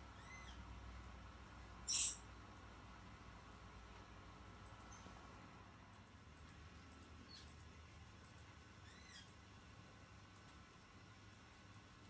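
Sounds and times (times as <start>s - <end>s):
parrot high squeaks: 0.2s - 0.6s, 1.9s - 2.2s.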